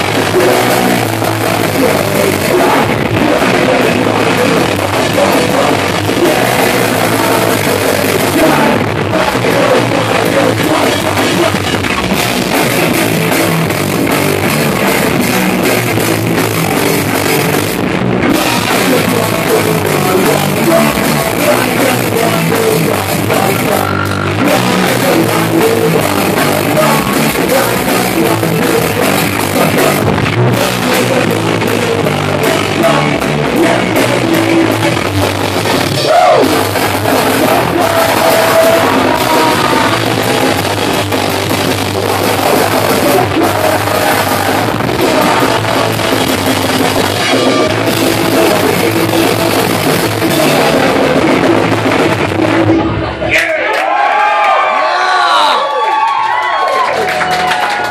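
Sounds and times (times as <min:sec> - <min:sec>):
person singing: 0:00.0 - 0:17.6, 0:18.2 - 0:52.8
drum kit: 0:00.0 - 0:53.2
distorted electric guitar: 0:00.0 - 0:53.4
bass guitar: 0:00.0 - 0:57.9.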